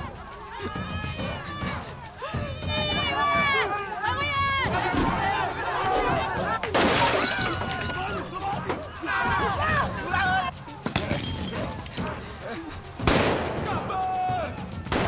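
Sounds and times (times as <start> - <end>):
people shouting and crying out: 0.0 - 15.0
window glass shattering: 6.7 - 8.8, 10.8 - 12.2.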